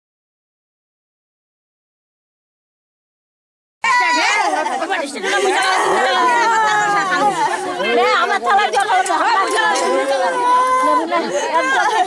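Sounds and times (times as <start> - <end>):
people talking: 3.8 - 12.0
women wailing and crying: 3.8 - 12.0.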